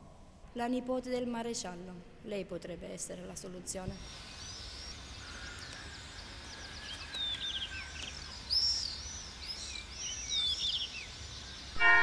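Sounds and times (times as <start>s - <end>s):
small birds chirping: 4.0s - 11.8s.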